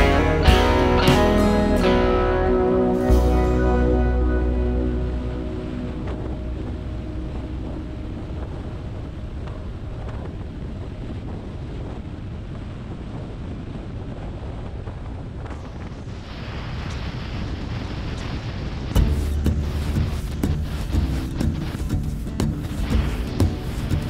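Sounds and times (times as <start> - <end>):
road noise: 0.0 - 12.7, 15.6 - 24.0
wind rushing over microphone: 0.0 - 24.0.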